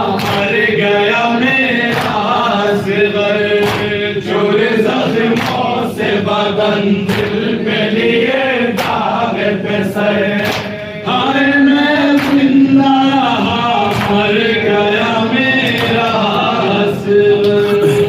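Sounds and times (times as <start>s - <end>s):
men chanting a mourning lament: 0.0s - 18.0s
hands slapping on chests: 0.1s - 0.5s, 1.9s - 2.4s, 3.6s - 4.0s, 5.3s - 5.8s, 7.1s - 7.5s, 8.7s - 9.1s, 10.4s - 10.8s, 12.1s - 12.6s, 13.9s - 14.3s.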